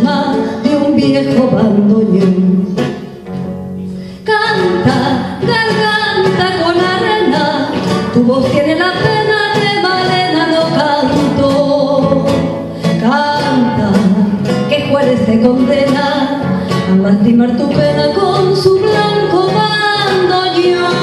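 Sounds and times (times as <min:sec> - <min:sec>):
woman singing: 0:00.0 - 0:03.0, 0:04.2 - 0:21.0
strummed acoustic guitar: 0:00.0 - 0:21.0.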